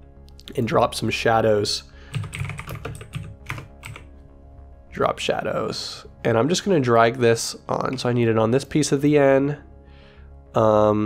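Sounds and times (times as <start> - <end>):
background music: 0.0 - 11.0
keyboard typing: 2.1 - 4.1.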